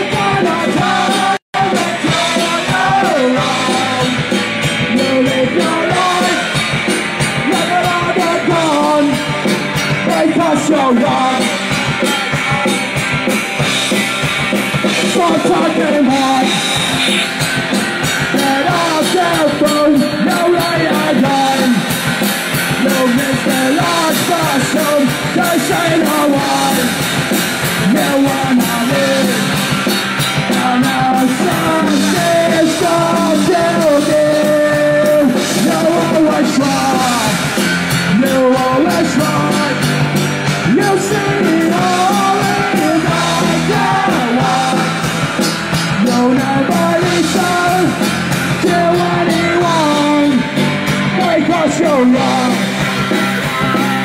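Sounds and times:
distorted electric guitars: 0.0 - 54.0
drum kit: 0.0 - 54.0
punk rock band playing: 0.0 - 54.0.

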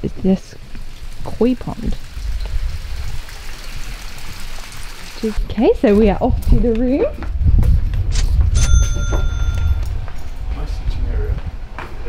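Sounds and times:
low microphone rumble: 5.3 - 11.7
bright metallic ding: 8.6 - 10.3.

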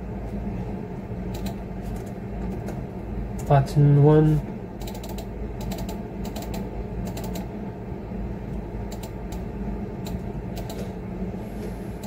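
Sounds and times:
low room hum: 0.0 - 12.0
keyboard keystrokes: 10.0 - 10.9.

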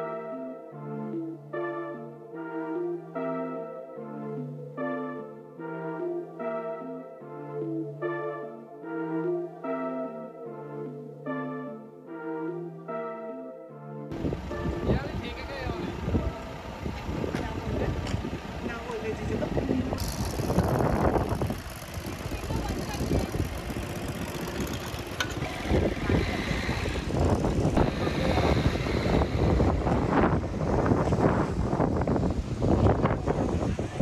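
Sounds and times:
vehicle noise: 14.1 - 34.0.

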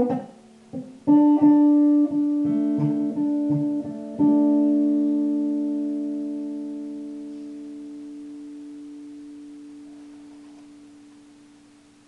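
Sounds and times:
electric guitar note ringing: 0.0 - 12.0.

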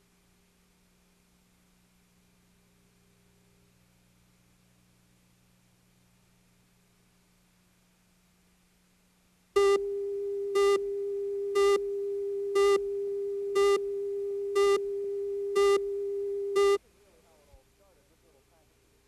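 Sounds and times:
steady line-up tone: 9.6 - 17.4.

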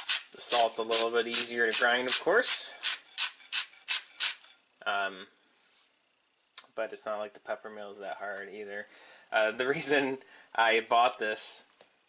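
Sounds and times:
salt mill grinding: 0.0 - 4.6.

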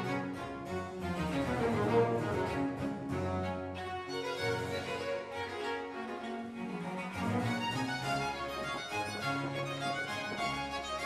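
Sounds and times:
bowed strings playing: 0.0 - 11.0.

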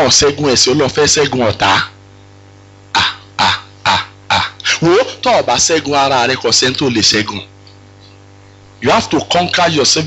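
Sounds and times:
low electrical hum: 0.0 - 10.0
person coughing: 1.2 - 2.0, 2.9 - 4.8.

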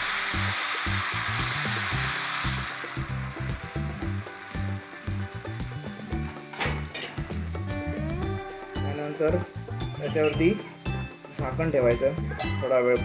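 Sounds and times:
background music: 0.0 - 13.0
batter sizzling on griddle: 0.0 - 13.0.

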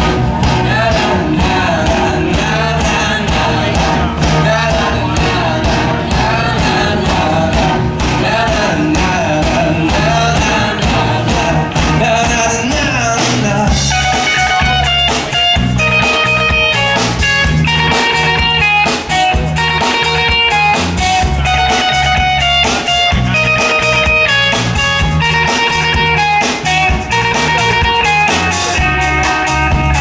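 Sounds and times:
drum kit: 0.0 - 30.0
electric guitars picking melodies: 0.0 - 30.0.

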